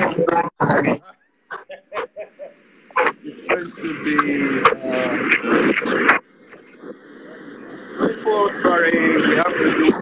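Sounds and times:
broken speech over online call: 0.0s - 1.2s, 2.9s - 10.0s
faint hissing noise: 0.0s - 10.0s.

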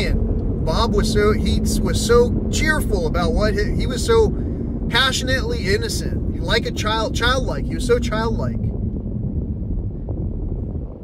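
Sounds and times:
vehicle cabin rumble: 0.0s - 11.0s.

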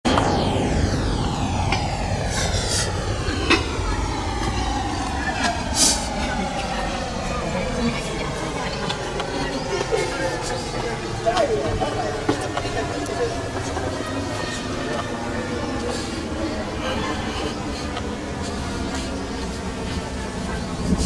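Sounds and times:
slow falling whoosh: 0.0s - 20.8s
indistinct crowd voices: 0.0s - 21.0s
steady low rumble: 0.0s - 21.0s.

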